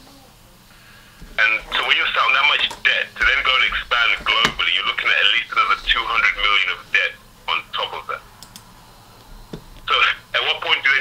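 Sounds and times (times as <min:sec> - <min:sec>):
man talking over phone line: 0:01.4 - 0:08.2, 0:09.9 - 0:11.0.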